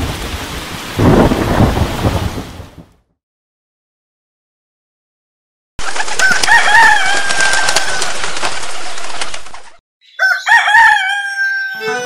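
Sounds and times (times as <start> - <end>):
rooster crowing: 6.2 - 8.4, 10.1 - 12.0.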